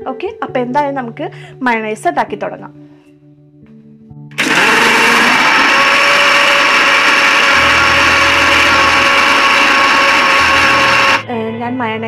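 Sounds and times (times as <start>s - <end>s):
mixer grinder motor running: 4.4s - 11.2s.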